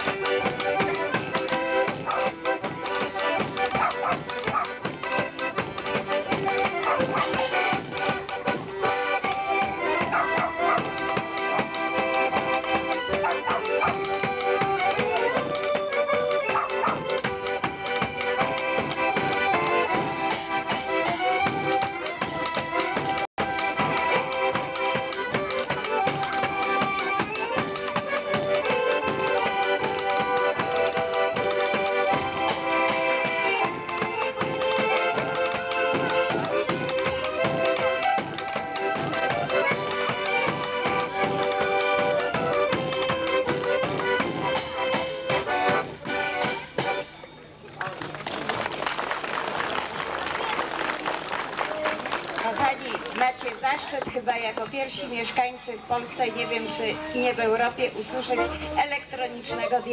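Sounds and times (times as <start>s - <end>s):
steady percussion beat: 0.0s - 47.2s
accordion melody: 0.0s - 47.6s, 50.3s - 59.9s.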